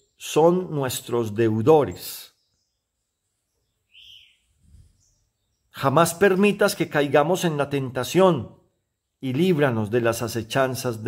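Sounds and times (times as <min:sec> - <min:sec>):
bird chirp: 0:00.0 - 0:11.0.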